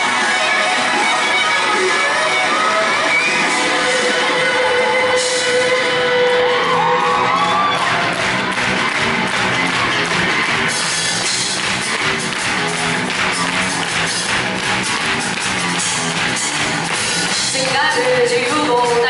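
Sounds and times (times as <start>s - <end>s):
drums driving beat: 0.0s - 19.0s
rock band playing: 0.0s - 19.0s.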